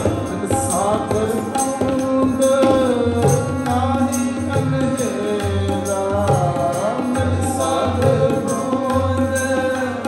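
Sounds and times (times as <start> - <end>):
man singing: 0.0 - 10.0
tabla strokes: 0.0 - 10.0.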